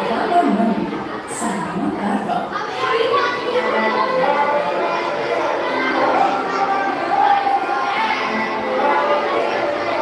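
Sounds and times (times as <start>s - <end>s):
crowd of children talking: 0.0s - 10.0s.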